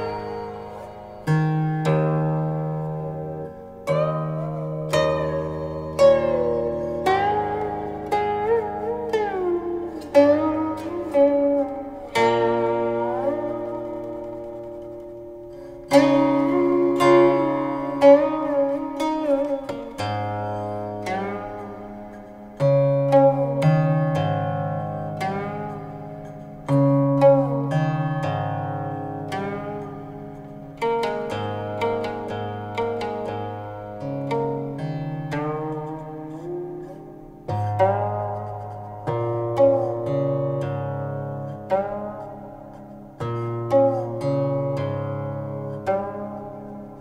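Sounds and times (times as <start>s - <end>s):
plucked zither notes: 0.0s - 47.0s.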